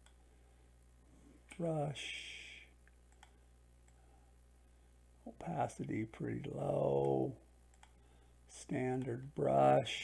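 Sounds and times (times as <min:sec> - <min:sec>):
computer mouse clicks: 0:00.0 - 0:00.2, 0:02.9 - 0:04.0, 0:07.0 - 0:08.0
faint steady hum: 0:00.0 - 0:10.0.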